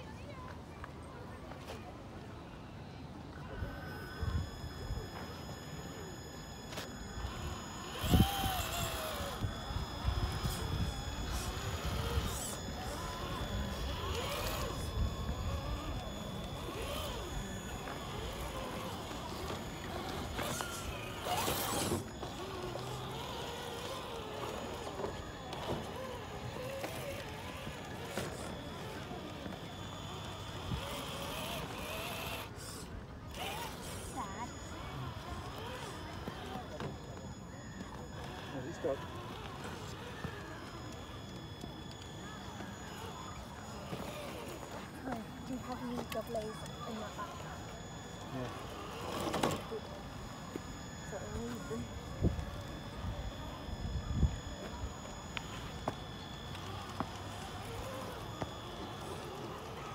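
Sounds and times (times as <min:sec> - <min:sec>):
indistinct voices: 0:03.0 - 0:59.9
toy car electric motor running: 0:03.3 - 0:59.9.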